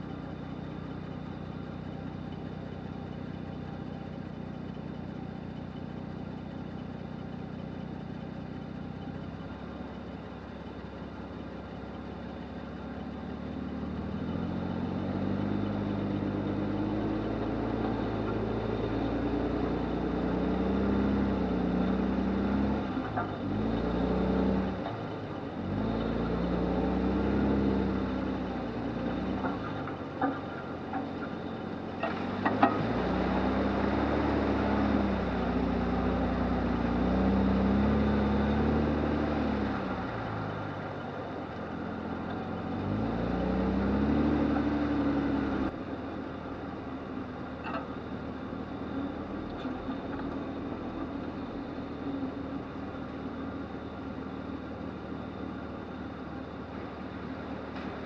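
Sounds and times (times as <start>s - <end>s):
car engine idling and revving: 0.0s - 58.0s.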